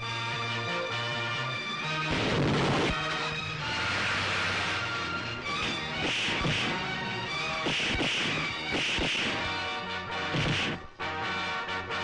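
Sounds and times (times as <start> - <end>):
film background score: 0.0 - 12.0
punch and thud impacts: 5.6 - 6.9, 7.6 - 9.6, 10.3 - 10.9.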